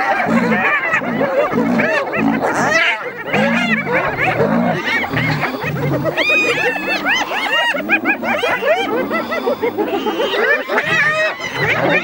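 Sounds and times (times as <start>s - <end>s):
hyenas whooping and yelping: 0.0s - 12.0s.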